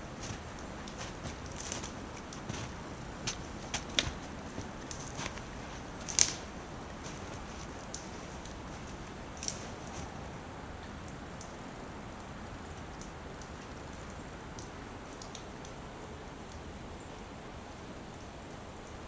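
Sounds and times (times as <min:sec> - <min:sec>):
footsteps crunching in snow: 0:00.0 - 0:10.3
faint hiss: 0:00.0 - 0:19.0.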